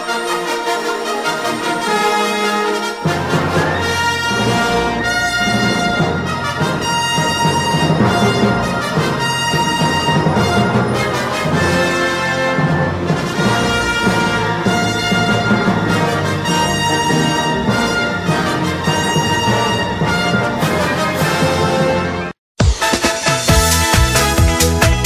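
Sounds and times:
brass-led orchestral music: 0.0 - 25.0.

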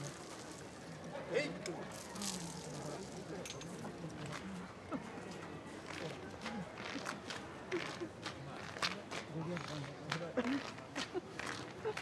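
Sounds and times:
faint background murmur: 0.0 - 12.0.

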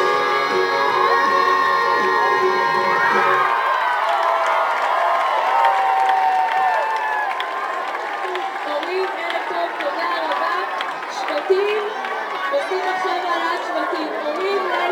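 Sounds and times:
dance music with steady beat: 0.0 - 3.5
crowd cheering: 0.0 - 14.9.

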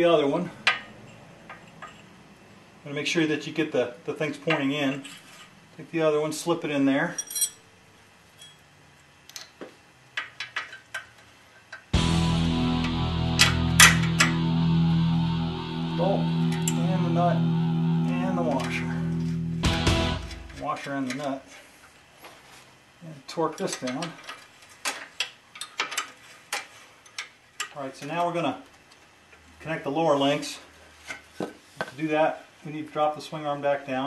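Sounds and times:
light metal clicks and clinks: 7.2 - 7.6.

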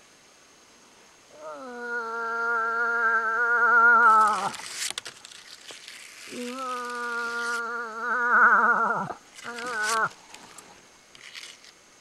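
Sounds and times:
moose call nasal moan: 1.4 - 4.6, 6.3 - 10.2.

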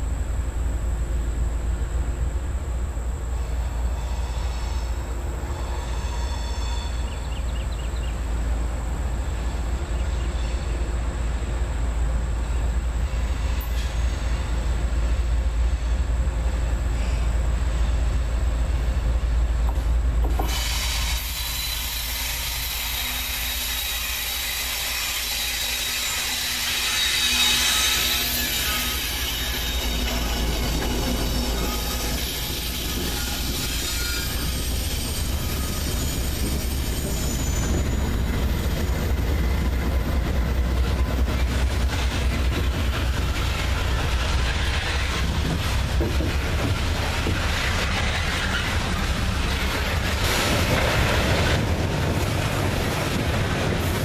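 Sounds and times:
diesel locomotives passing: 0.0 - 54.0
steady wheel-on-rail noise: 0.0 - 54.0
thin wheel squeal: 5.6 - 7.4, 20.5 - 39.1.

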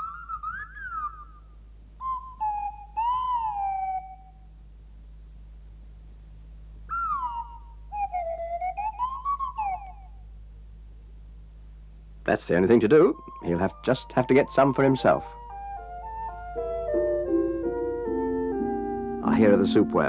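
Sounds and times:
slide whistle gliding notes: 0.0 - 4.4, 6.9 - 10.2, 13.2 - 20.0.

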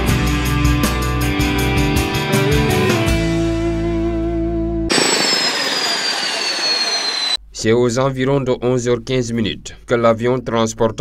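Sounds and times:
turbine engines whining: 4.9 - 7.4.

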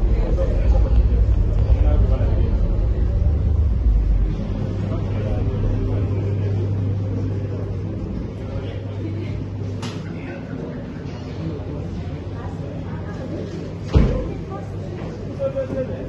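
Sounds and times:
deep rumble: 0.0 - 9.9
crowd chatter: 0.0 - 16.0
steady low hum: 0.0 - 16.0.

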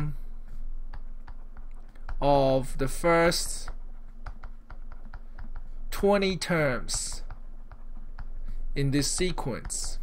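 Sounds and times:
faint steady hum: 0.0 - 10.0
stylus tapping on drawing tablet: 0.9 - 10.0.

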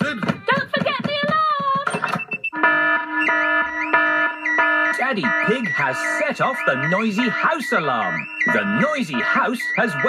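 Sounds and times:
wavering electronic alarm tone: 2.0 - 10.0.

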